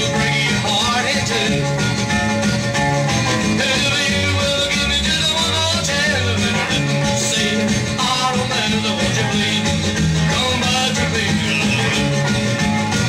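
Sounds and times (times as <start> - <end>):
rockabilly record playing: 0.0 - 13.0.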